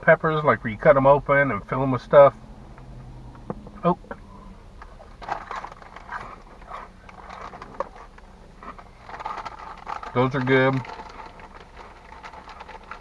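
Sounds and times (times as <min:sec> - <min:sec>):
crunchy snacks being chewed: 0:05.1 - 0:13.0.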